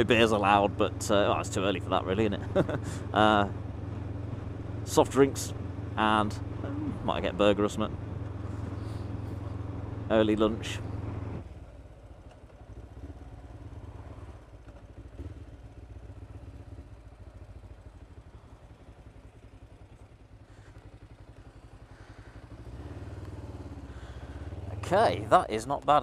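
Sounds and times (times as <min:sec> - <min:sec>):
motorcycle engine running: 0:00.0 - 0:26.0.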